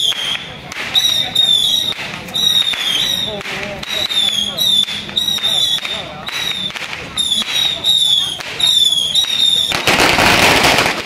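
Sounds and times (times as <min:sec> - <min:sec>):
shrill high whistle: 0:00.0 - 0:09.8
firecrackers crackling: 0:00.0 - 0:11.0.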